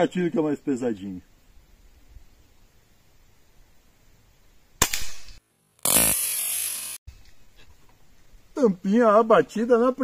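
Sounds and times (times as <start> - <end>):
air rifle firing crack: 4.8 - 6.4.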